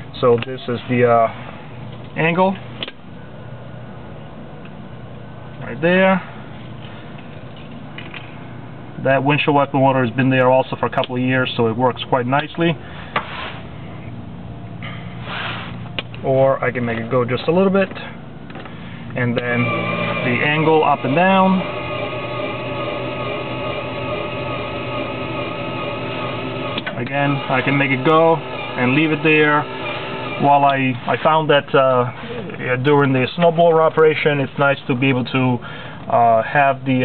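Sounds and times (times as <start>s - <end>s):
wiper motor running: 19.1s - 31.5s.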